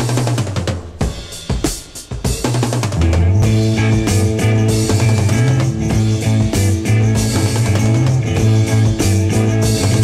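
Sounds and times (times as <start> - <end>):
drum kit break: 0.0 - 10.0
hard rock band playing: 1.0 - 10.0
bass guitar notes: 3.0 - 10.0.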